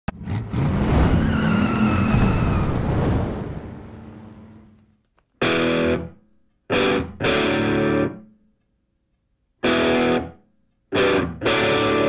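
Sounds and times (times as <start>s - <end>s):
car engine revving hard: 0.1s - 2.1s
tires squealing: 0.1s - 4.7s.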